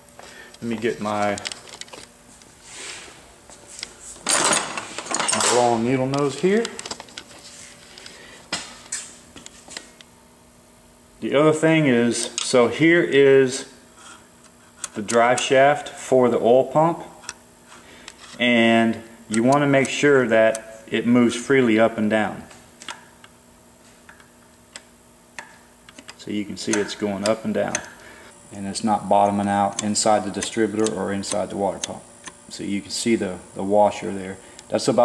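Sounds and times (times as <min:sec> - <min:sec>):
faint steady hum: 0:00.0 - 0:35.0.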